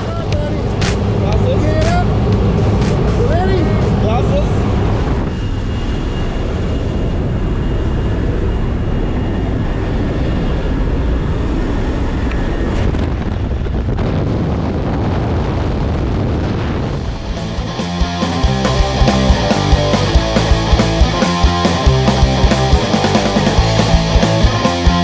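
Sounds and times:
wind rushing through open door: 0.0 - 17.8
plane engine running: 0.0 - 25.0.

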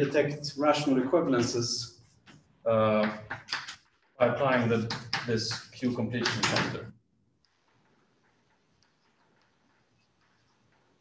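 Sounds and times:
chalk tapping and scratching: 2.0 - 6.8, 7.5 - 11.0.

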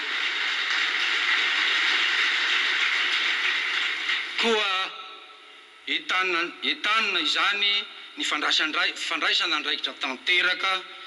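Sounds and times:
audience applauding: 0.0 - 4.5.

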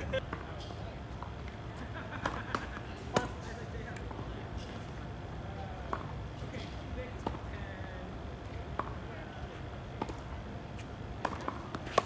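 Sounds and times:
racket hitting tennis ball: 10.0 - 12.0.

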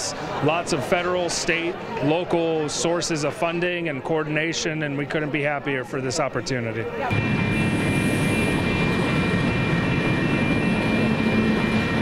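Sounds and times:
freight train rumble: 7.1 - 12.0
high-pitched tones: 7.1 - 12.0.

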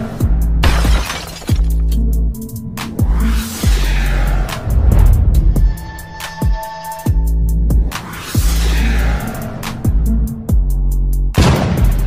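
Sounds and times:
shattering crash: 0.6 - 2.0
deep bass drops: 3.0 - 9.2.

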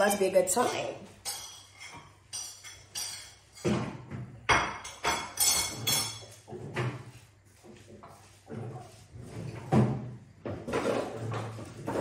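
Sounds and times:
crockery clinking and knocking: 0.5 - 7.1.

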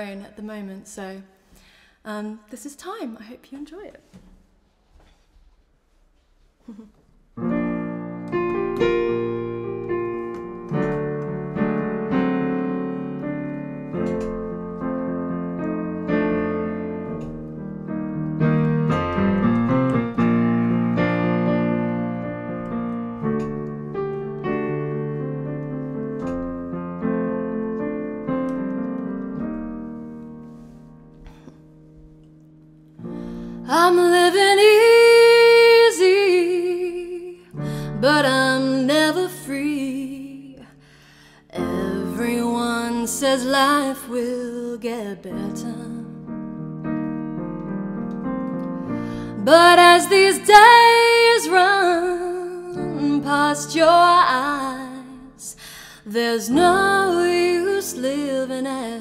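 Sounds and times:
digital piano ballad chords: 7.4 - 59.0.

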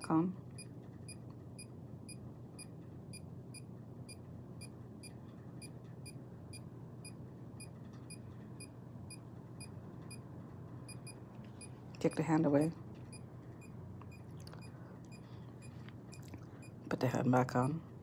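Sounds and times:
faint low hum: 0.0 - 18.0.

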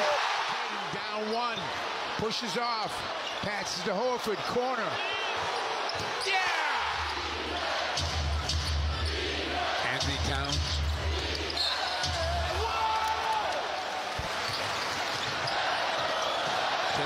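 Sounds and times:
arena crowd noise: 0.0 - 17.0.

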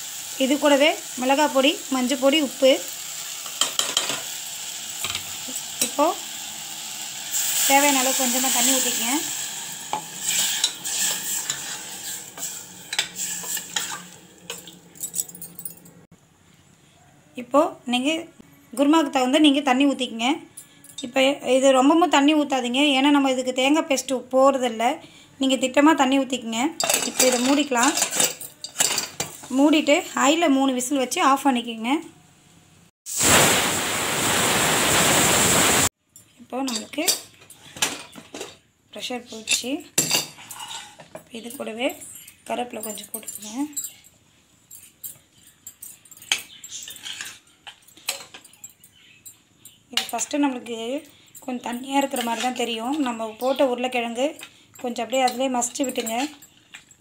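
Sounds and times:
food sizzling: 0.0 - 15.0, 33.1 - 36.0
ladle scraping a steel pot: 9.9 - 14.7.

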